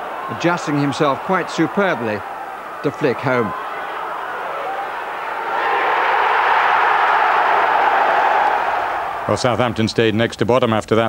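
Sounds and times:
stadium crowd cheering: 0.0s - 10.4s.

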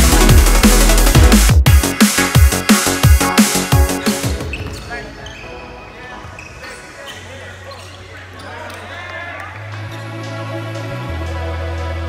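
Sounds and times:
drum and bass beat: 0.0s - 4.5s.

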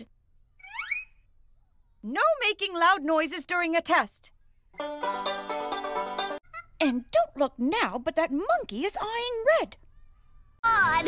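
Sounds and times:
cartoon rising squeak: 0.6s - 1.2s.

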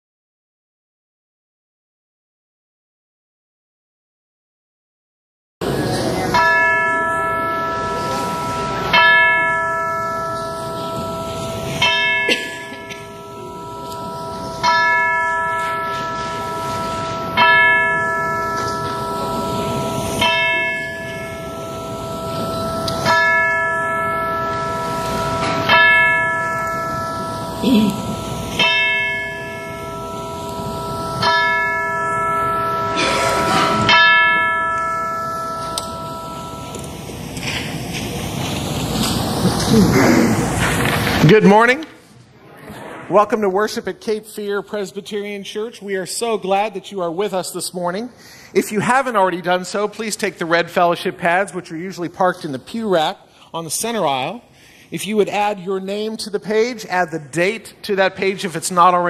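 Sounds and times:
church bell tolling: 5.6s - 41.8s.

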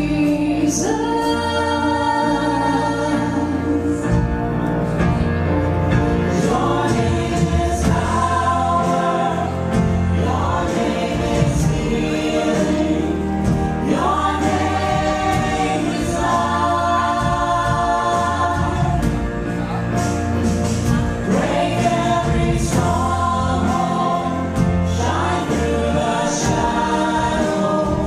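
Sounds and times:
singers in harmony: 0.0s - 28.0s
worship band playing: 0.0s - 28.0s.

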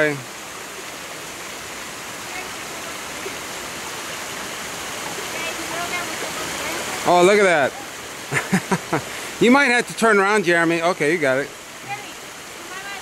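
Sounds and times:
creek flowing over boulders: 0.0s - 13.0s.

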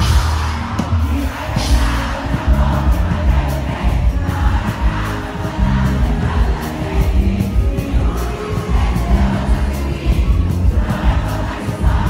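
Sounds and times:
large crowd noise: 0.0s - 12.0s
live concert music: 0.0s - 12.0s
pulsing bass beat: 0.0s - 12.0s.

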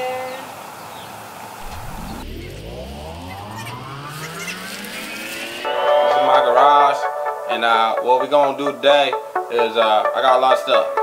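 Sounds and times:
engine-like revving rising in pitch: 1.6s - 6.2s
music with a voice: 1.6s - 11.0s.

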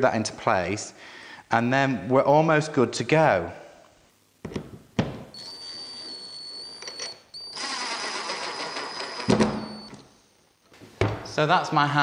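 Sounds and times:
drill motor whining: 5.4s - 10.0s
drill clicks: 6.8s - 10.0s.

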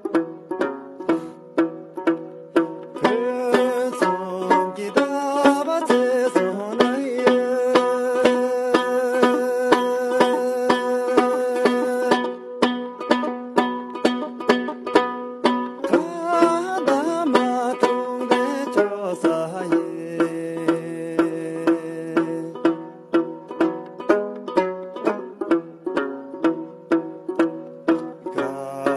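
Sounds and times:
lute plucked: 0.0s - 28.9s
man singing: 2.9s - 12.6s, 15.8s - 23.0s, 28.0s - 28.9s.

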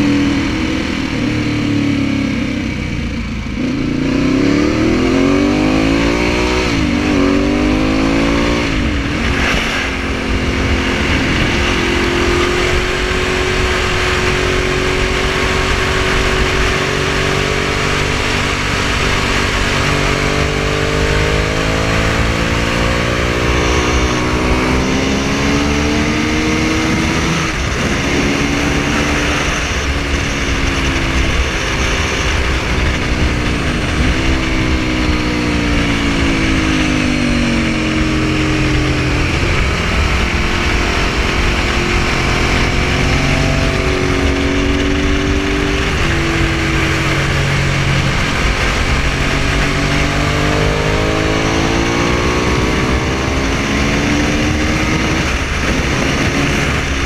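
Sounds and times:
motorcycle engine accelerating: 0.0s - 57.0s
wind noise: 0.0s - 57.0s.

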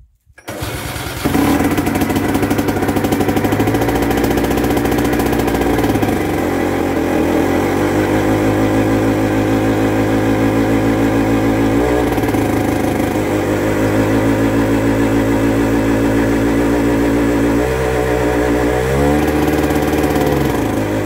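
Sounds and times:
diesel tractor engine running: 0.4s - 21.0s.

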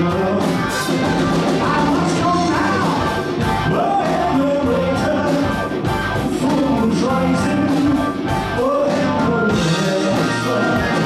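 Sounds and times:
bass guitar: 0.0s - 11.0s
drum kit: 0.0s - 11.0s
electric guitar: 0.0s - 11.0s
man singing: 0.0s - 11.0s
organ: 0.0s - 11.0s.

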